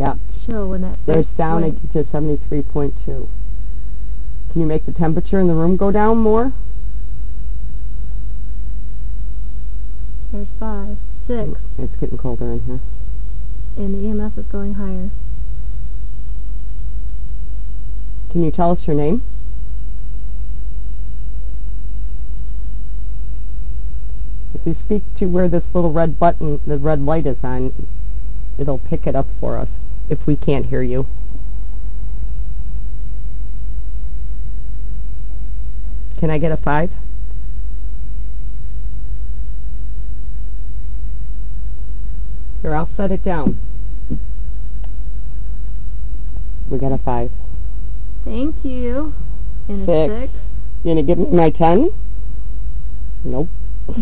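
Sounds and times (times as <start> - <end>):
low rumble: 0.0 - 54.0
faint even hiss: 48.2 - 52.0.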